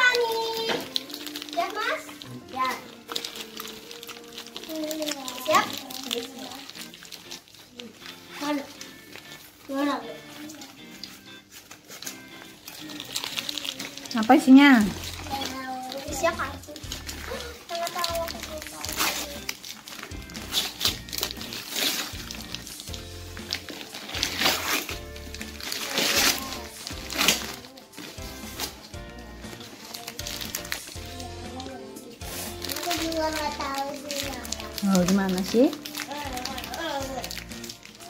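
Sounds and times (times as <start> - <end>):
children's voices: 0.0 - 3.0, 4.6 - 6.9, 9.6 - 10.8, 15.1 - 19.5, 31.0 - 34.8, 35.9 - 37.4
background music: 0.0 - 38.0
wrapping paper tearing: 0.0 - 38.0.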